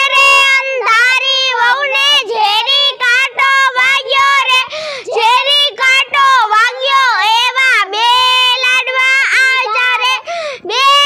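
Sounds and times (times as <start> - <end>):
child singing unaccompanied: 0.0 - 11.0.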